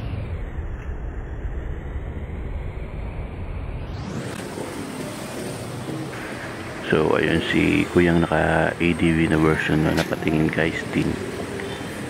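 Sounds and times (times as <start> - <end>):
motor scooters idling: 5.2 - 12.0.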